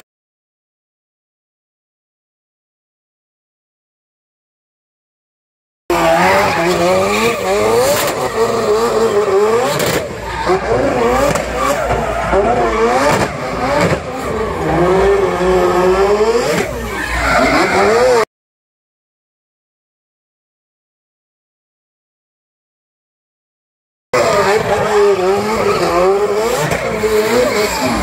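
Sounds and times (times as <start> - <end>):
rotary engine revving: 5.9 - 18.3, 24.2 - 28.0
tyre screech: 5.9 - 18.3, 24.2 - 28.0.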